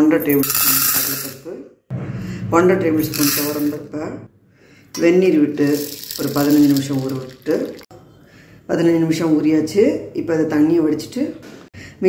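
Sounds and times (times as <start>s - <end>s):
woman narrating: 2.4s - 4.3s, 5.0s - 7.8s
lentils rattling into steel pot: 3.1s - 3.8s, 5.6s - 7.9s.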